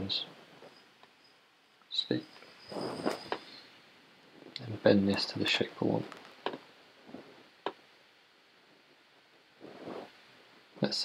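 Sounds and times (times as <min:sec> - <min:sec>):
soft sound: 0:02.1 - 0:03.7, 0:09.6 - 0:10.7.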